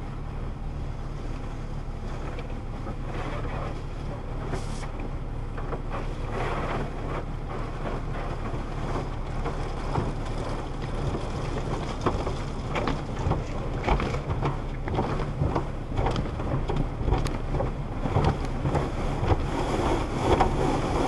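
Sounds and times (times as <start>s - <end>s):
water spraying on windshield: 1.2s - 21.0s.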